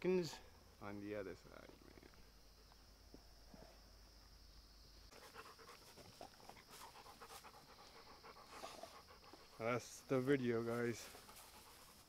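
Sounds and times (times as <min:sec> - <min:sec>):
dog panting: 0:05.1 - 0:10.1, 0:11.0 - 0:12.0.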